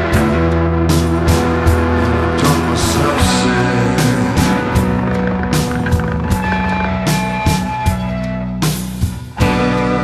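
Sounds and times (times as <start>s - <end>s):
bass line: 0.0s - 10.0s
guitars: 0.0s - 10.0s.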